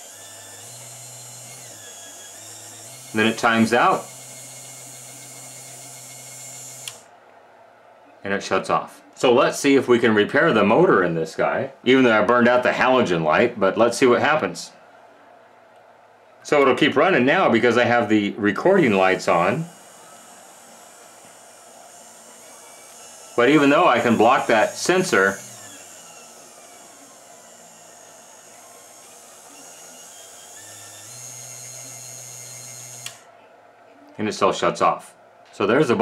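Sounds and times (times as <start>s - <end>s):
small motor whirring: 0.0s - 7.1s, 18.8s - 33.3s.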